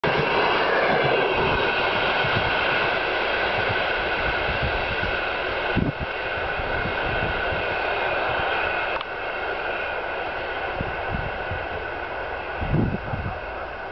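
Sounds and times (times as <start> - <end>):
train rumbling past: 0.0 - 13.9.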